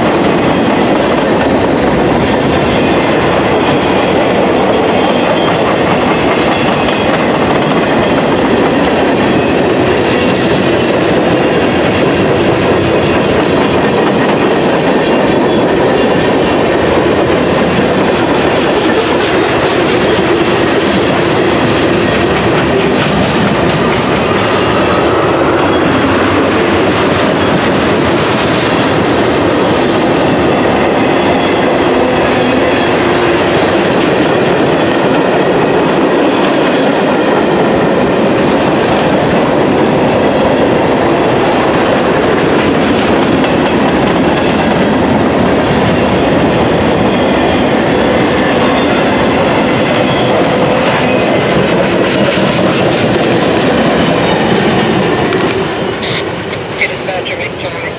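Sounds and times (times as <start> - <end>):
freight train rolling past: 0.0 - 57.9.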